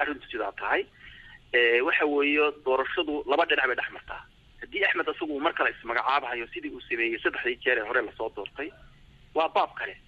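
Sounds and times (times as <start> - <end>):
person reading the news: 0.0 - 10.0.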